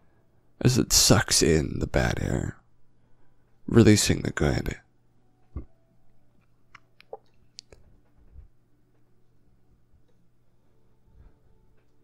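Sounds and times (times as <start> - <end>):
faint mouth clicks: 6.7 - 7.8.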